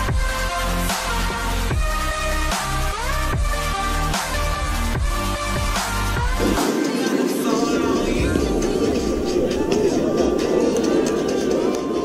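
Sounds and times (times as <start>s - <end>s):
loud background music: 0.0s - 12.0s.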